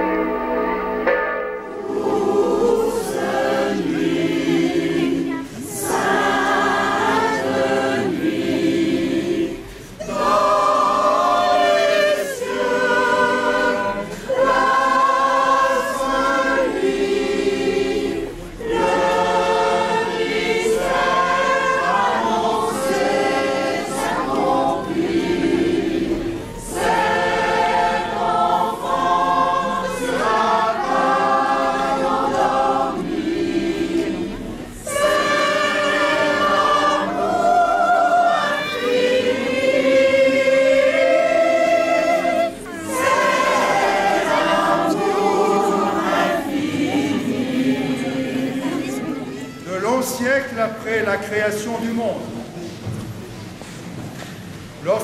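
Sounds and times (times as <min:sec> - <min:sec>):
choir singing: 0:00.0 - 0:50.1.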